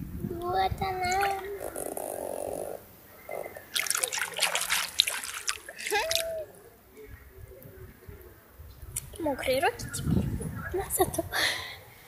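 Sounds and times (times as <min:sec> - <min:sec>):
hand splashing in water: 0:03.7 - 0:06.4.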